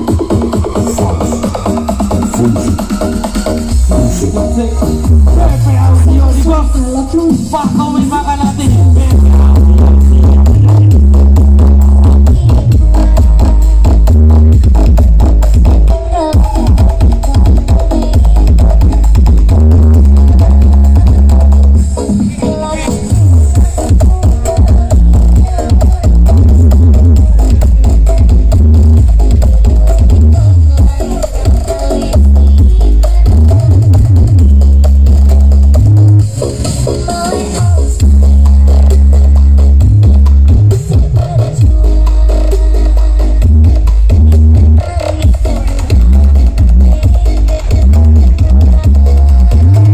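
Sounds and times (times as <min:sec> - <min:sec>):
heavy deep bass: 0:00.0 - 0:49.9
loud electronic dance music: 0:00.0 - 0:49.9.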